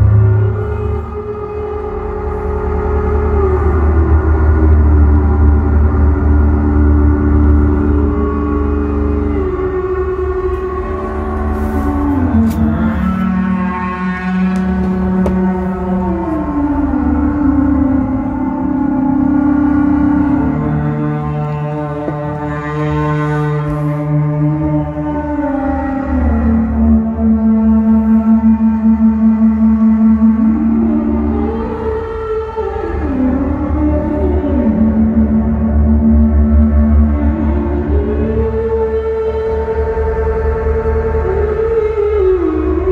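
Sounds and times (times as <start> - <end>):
deep hum: 0.0 - 42.9
resonant gong-like drone: 0.0 - 42.9
synthesizer note rich in overtones: 7.5 - 18.6
voice-like gliding synth line: 8.9 - 17.0.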